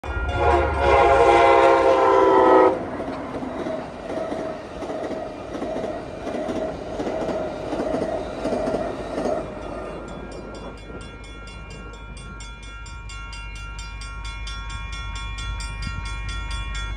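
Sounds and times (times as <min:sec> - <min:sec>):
train horn chord: 0:00.0 - 0:02.9
crossing warning bell ringing: 0:00.0 - 0:03.2, 0:09.1 - 0:16.9
train rumbling past: 0:00.0 - 0:16.9.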